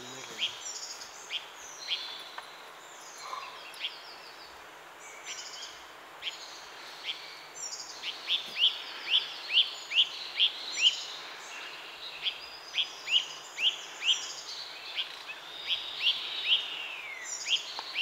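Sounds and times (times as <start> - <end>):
small bird calling: 0.0 - 4.6, 5.2 - 18.0
background hiss: 0.0 - 18.0.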